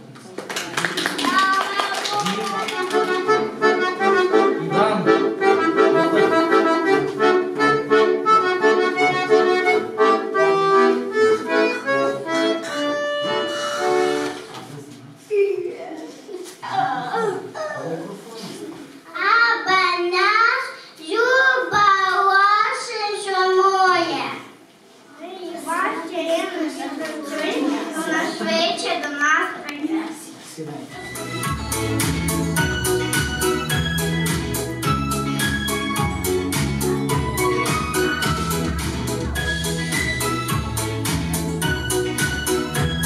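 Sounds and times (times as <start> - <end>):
accordion playing a tune: 2.5 - 14.6, 31.0 - 43.0
child speaking into a microphone: 19.0 - 30.4.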